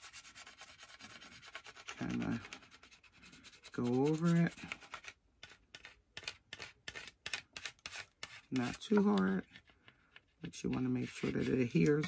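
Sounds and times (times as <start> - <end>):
plastic scraper rubbing on tape: 0.0 - 9.3.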